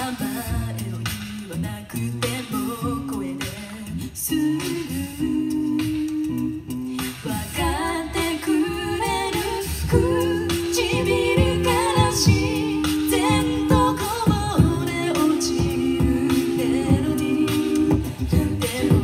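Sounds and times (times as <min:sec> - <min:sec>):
backing vocal harmonies: 0:00.0 - 0:19.0
lead voice singing: 0:00.0 - 0:19.0
vocal percussion beat: 0:00.0 - 0:19.0.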